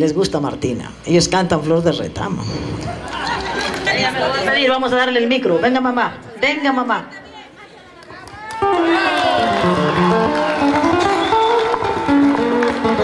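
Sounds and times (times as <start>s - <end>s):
crowd talking: 2.8s - 13.0s
acoustic guitar melody: 8.6s - 13.0s.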